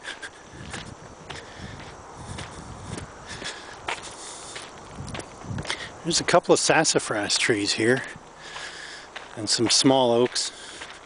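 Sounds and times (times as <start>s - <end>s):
footsteps on sandy dirt road: 0.0s - 11.0s
wind rumble: 0.4s - 6.6s.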